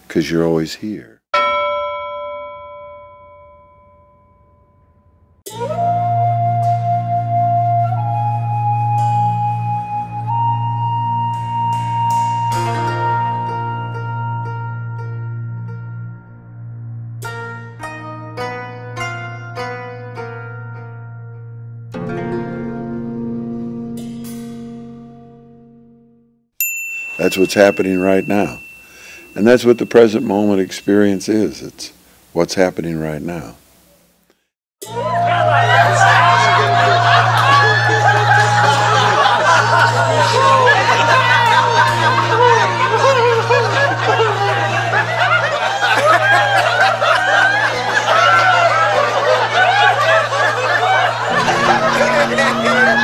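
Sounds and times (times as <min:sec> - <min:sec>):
bell ringing: 0:01.4 - 0:05.3, 0:26.6 - 0:31.8, 0:34.8 - 0:53.0
high bell-like ding: 0:01.4 - 0:05.4, 0:26.6 - 0:31.7
plucked string music: 0:05.5 - 0:16.5, 0:17.2 - 0:26.3, 0:34.8 - 0:53.0.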